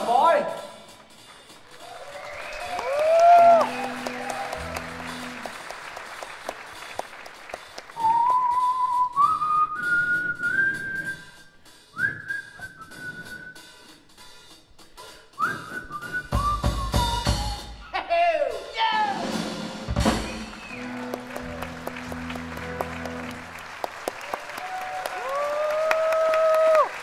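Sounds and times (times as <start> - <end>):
audience cheering: 1.4 - 8.7, 20.0 - 27.0
sliding whistle: 8.0 - 14.0, 15.4 - 17.7
man whistling a tune: 8.0 - 14.1, 15.4 - 17.9, 20.2 - 21.2.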